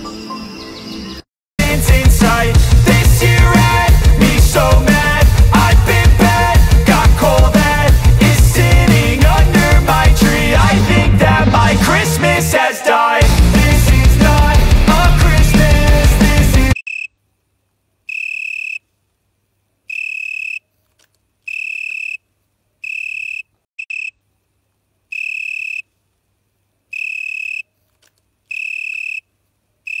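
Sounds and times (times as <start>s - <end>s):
rock music: 1.6s - 12.6s, 13.2s - 16.8s
frog trilling call: 18.1s - 18.9s, 19.9s - 20.7s, 21.5s - 24.2s, 25.1s - 25.9s, 26.9s - 27.7s, 28.5s - 30.0s.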